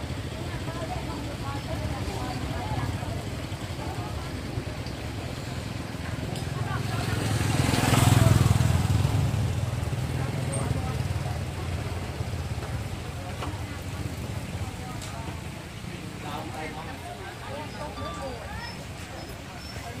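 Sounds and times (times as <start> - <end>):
road traffic rumble: 0.0 - 20.0
vehicle passing close by: 6.6 - 11.2.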